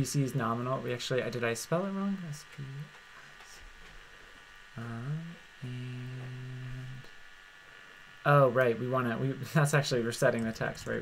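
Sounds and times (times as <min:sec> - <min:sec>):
man humming: 0:04.8 - 0:07.2.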